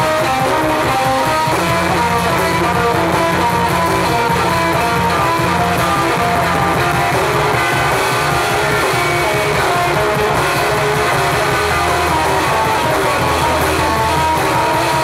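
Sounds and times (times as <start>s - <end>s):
electric guitar: 0.0s - 15.0s
live rock band playing: 0.0s - 15.0s.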